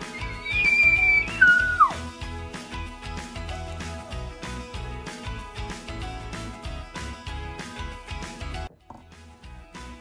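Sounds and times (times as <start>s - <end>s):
high whistle-like tone: 0.0s - 2.0s
background music: 0.0s - 10.0s.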